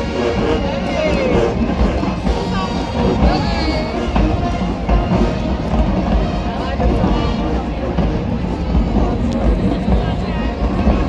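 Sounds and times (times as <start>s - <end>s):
crowd: 0.0s - 11.0s
low stadium rumble: 0.0s - 11.0s
marching band: 0.0s - 11.0s.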